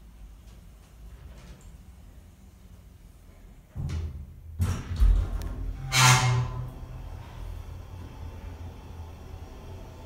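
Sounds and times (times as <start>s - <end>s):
elevator heavy thump: 3.7s - 8.4s
elevator low rumble: 4.6s - 10.0s.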